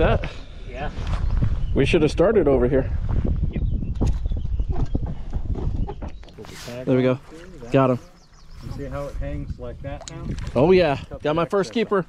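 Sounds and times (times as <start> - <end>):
wind buffeting microphone: 0.0 - 6.6, 7.3 - 11.5.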